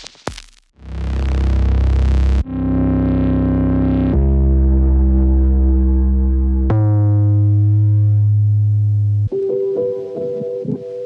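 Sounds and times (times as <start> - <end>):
synthesizer bass tone: 0.8 - 10.8.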